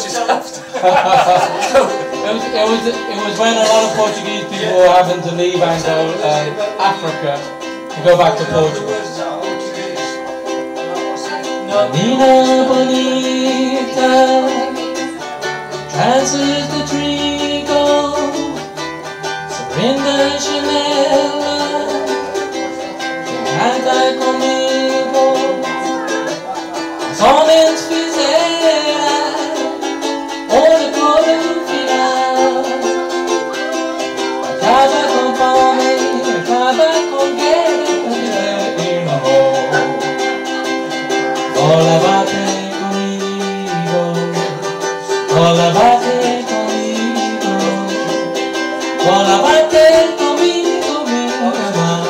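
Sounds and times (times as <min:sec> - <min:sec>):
man singing: 0:00.0 - 0:52.0
strummed string instrument: 0:00.0 - 0:52.0.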